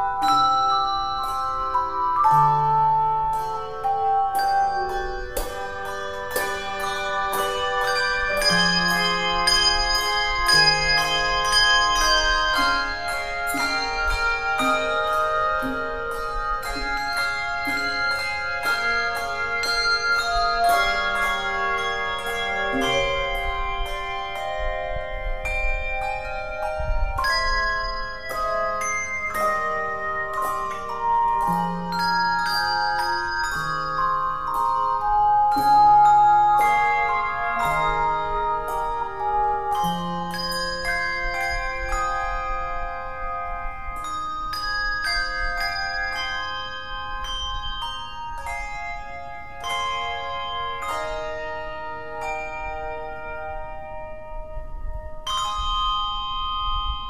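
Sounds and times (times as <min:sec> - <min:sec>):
handbell choir ringing chords: 0:00.0 - 0:57.0.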